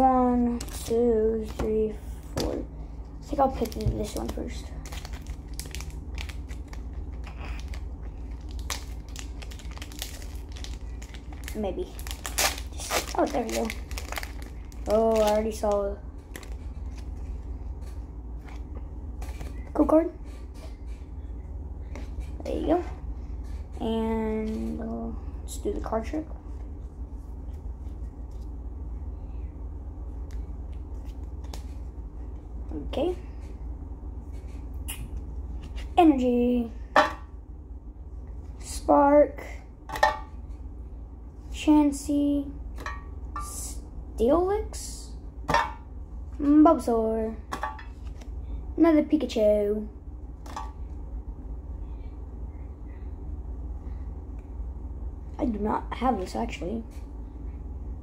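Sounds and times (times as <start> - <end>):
steady low hum: 0.0 - 58.0
foil wrapper crinkling: 3.5 - 17.1.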